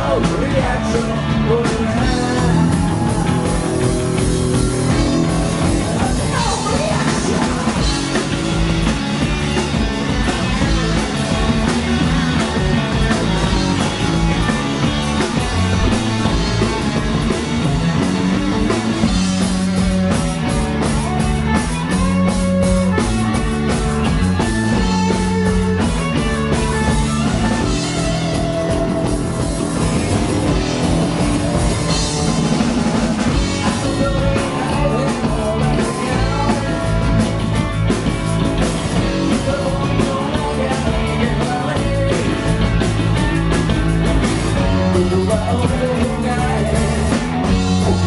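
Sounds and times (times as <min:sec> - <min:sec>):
distorted electric guitars: 0:00.0 - 0:48.0
drum kit: 0:00.0 - 0:48.0
electric bass: 0:00.0 - 0:48.0.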